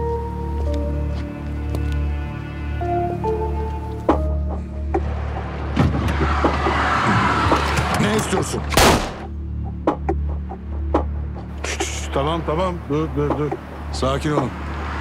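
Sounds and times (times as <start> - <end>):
dramatic score drone: 0.0 - 15.0
men's voices: 7.7 - 8.8, 11.5 - 14.7.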